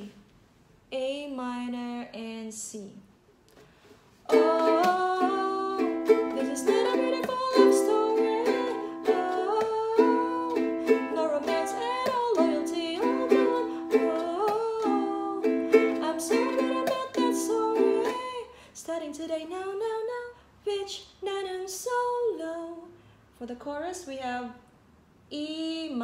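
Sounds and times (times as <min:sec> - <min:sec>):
ukulele strumming: 0:04.3 - 0:18.4
woman singing: 0:04.3 - 0:24.6, 0:25.3 - 0:26.0.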